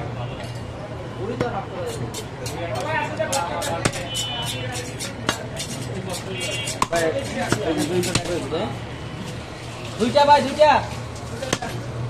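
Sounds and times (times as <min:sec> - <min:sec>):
knife chopping meat on wood: 0:01.4 - 0:08.5.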